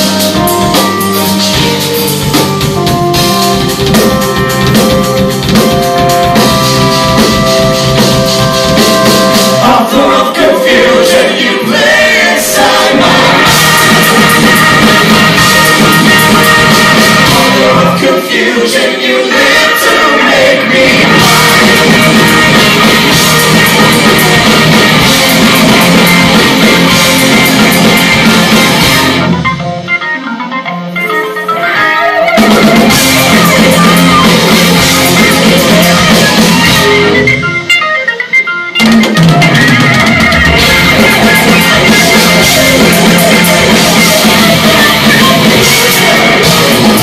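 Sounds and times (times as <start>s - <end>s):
picked electric guitar notes: 0.0s - 11.5s, 13.0s - 18.1s, 20.7s - 47.0s
rock band playing: 0.0s - 47.0s
vocal harmonies: 8.5s - 29.4s, 31.4s - 37.5s, 40.1s - 47.0s.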